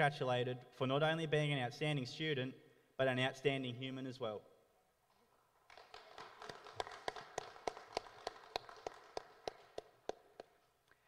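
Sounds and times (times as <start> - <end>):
faint applause: 5.7 - 10.5.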